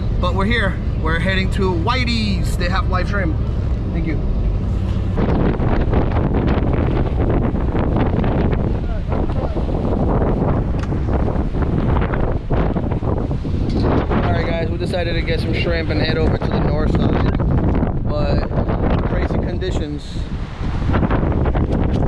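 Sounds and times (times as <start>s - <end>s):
vehicle cabin rumble: 0.0s - 22.0s
wind buffeting microphone: 0.0s - 22.0s.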